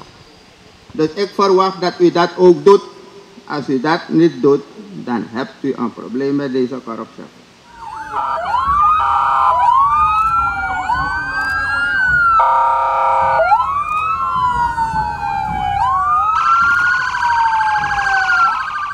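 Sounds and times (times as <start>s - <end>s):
fast siren warble: 7.6s - 18.9s
police sirens wailing: 7.6s - 18.9s
steady blaring siren tone: 7.6s - 18.9s.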